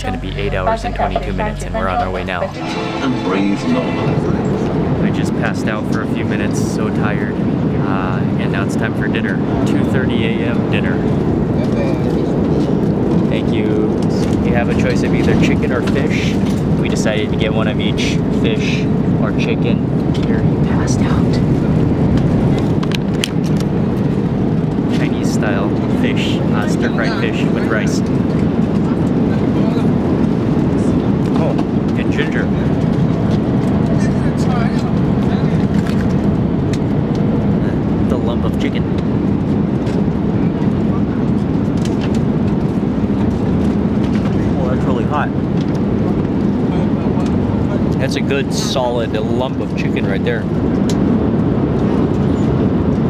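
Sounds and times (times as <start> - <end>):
airliner cabin roar: 0.0 - 53.0
faint constant hum: 0.0 - 53.0.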